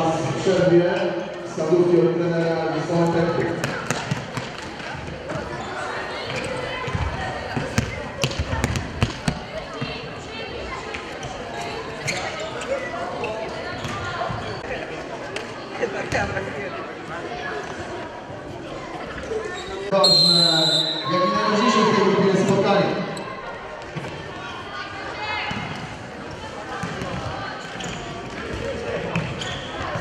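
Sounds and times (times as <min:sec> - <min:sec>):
players shouting and chattering: 0:00.0 - 0:30.0.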